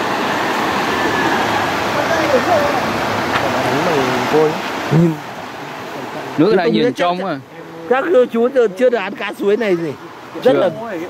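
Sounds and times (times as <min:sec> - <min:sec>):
stream running over stones: 0:00.0 - 0:11.0.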